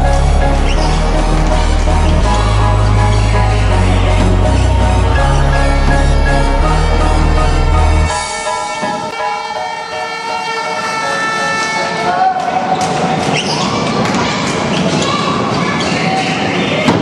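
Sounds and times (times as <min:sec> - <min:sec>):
music track: 0:00.0 - 0:13.0
crowd chatter: 0:00.0 - 0:17.0.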